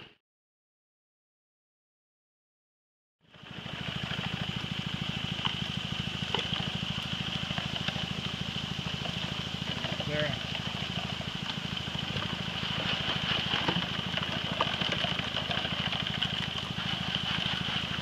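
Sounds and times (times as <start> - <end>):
small water pump engine running: 3.2 - 18.0.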